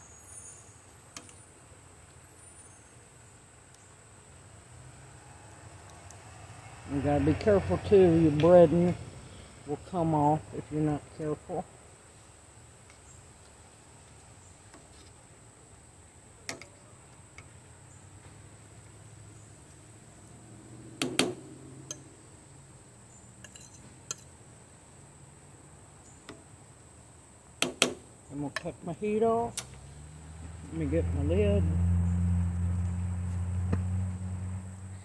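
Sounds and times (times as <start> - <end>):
high insect drone: 0.0 - 16.4, 17.1 - 35.0.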